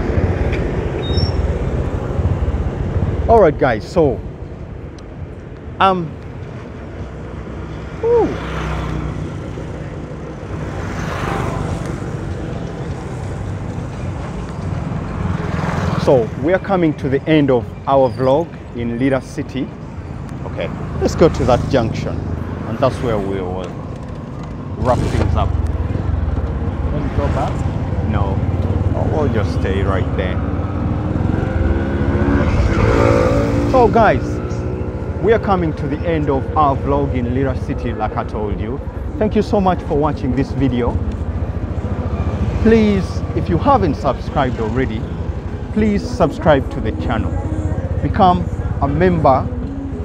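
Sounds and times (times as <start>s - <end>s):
road noise: 0.0s - 50.0s.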